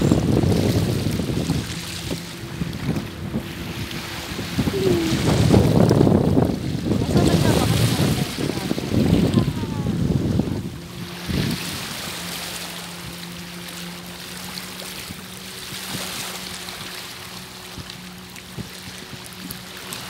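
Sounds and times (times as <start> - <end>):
sea waves washing: 0.0 - 20.0
wind buffeting microphone: 0.0 - 20.0.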